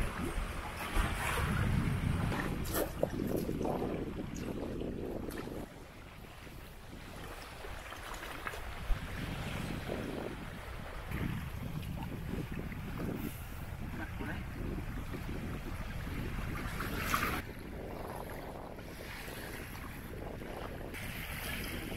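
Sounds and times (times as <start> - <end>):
small waves lapping: 0.0 - 21.9
wind buffeting microphone: 0.0 - 21.9.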